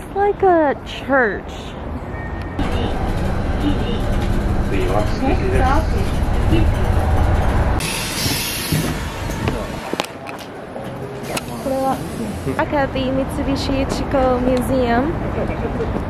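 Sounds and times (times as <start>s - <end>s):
bus engine and road rumble: 0.0s - 16.0s
compressed air hiss: 7.8s - 9.0s.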